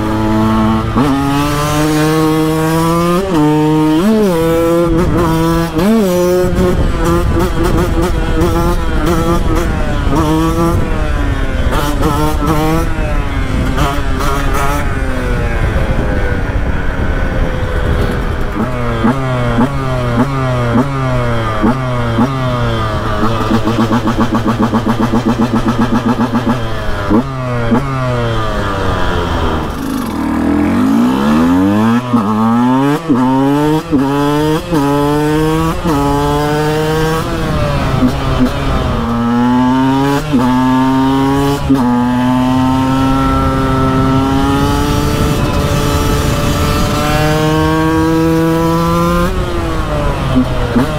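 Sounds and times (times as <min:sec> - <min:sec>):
two-stroke motorcycle engine revving: 0:00.0 - 0:50.9.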